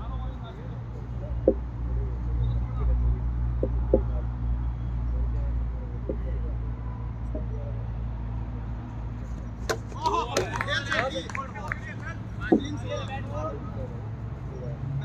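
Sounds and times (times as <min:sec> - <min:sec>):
faint knocks: 0:01.4 - 0:02.0, 0:03.5 - 0:04.4
players shouting: 0:09.7 - 0:14.1
ball cracking into plastic stumps: 0:12.5 - 0:12.8.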